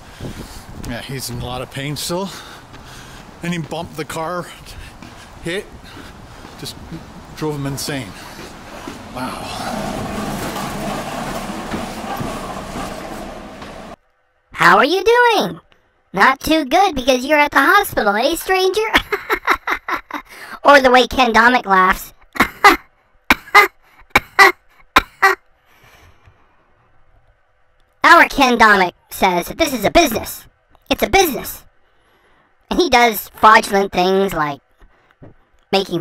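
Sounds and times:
steady rushing noise: 0:00.0 - 0:14.0
low rumble: 0:02.4 - 0:14.0
man laughing: 0:09.1 - 0:10.1, 0:18.9 - 0:20.3.

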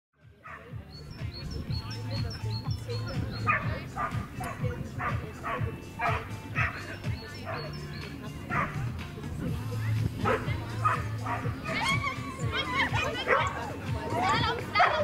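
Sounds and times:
dog barking: 0:00.4 - 0:00.7, 0:03.4 - 0:06.8, 0:07.4 - 0:07.8, 0:08.5 - 0:08.8, 0:10.2 - 0:11.8, 0:13.2 - 0:13.6, 0:14.8 - 0:15.0
small birds chirping: 0:00.4 - 0:15.0.

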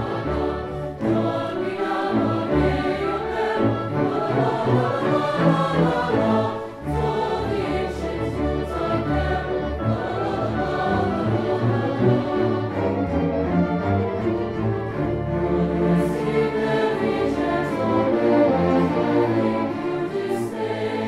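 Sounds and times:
choir singing: 0:00.0 - 0:21.0
orchestra playing: 0:00.0 - 0:21.0.

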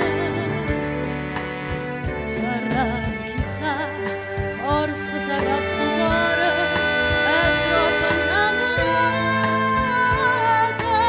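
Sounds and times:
small band playing ballad: 0:00.0 - 0:11.0.

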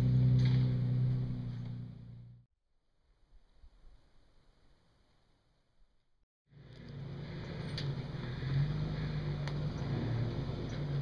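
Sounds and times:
car engine running at low speed: 0:00.0 - 0:02.4, 0:06.5 - 0:11.0.

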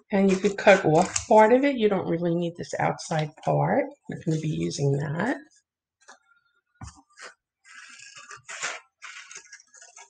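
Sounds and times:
scissors cutting paper: 0:00.2 - 0:01.5, 0:07.1 - 0:10.0.

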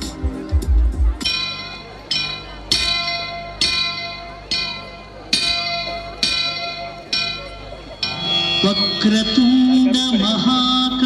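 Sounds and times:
ringing bell tones: 0:01.2 - 0:11.0.

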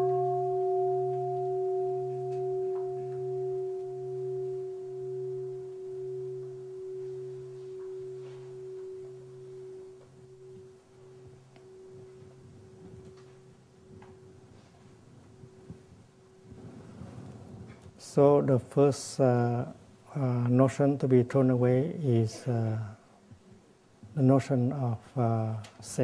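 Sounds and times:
bowl bell ringing: 0:00.0 - 0:17.1.

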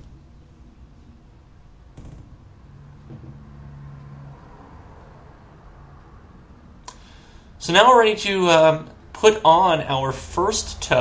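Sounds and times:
low hiss and hum: 0:00.0 - 0:11.0.

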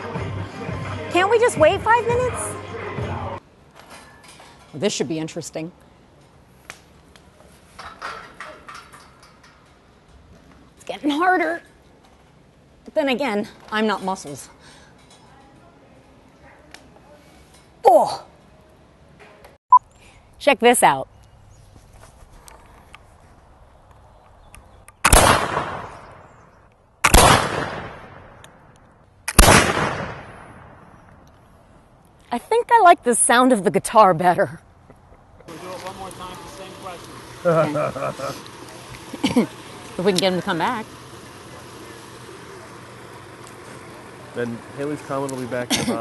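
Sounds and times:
outdoor background noise: 0:00.0 - 0:46.0
rifle shots: 0:25.0 - 0:25.9, 0:27.0 - 0:28.4, 0:29.3 - 0:30.8
low even hum: 0:35.1 - 0:46.0.

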